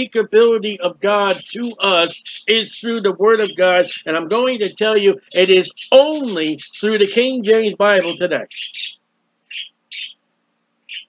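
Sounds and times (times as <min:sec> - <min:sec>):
small bird chirping: 0:01.2 - 0:02.8, 0:03.4 - 0:10.2.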